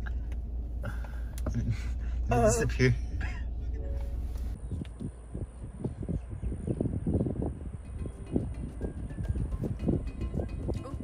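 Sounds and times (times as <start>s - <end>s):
car road rumble: 0.0s - 11.0s.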